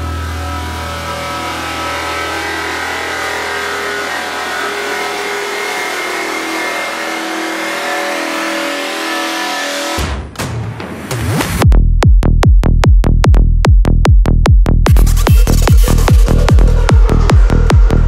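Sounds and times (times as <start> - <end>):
deep bass drone: 0.0 - 9.6, 11.6 - 18.0
sustained synth chords: 0.0 - 10.0, 14.9 - 18.0.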